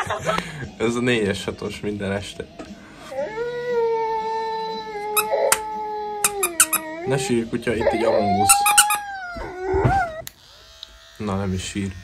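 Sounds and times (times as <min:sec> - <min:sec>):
dog howling: 0:07.8 - 0:10.3.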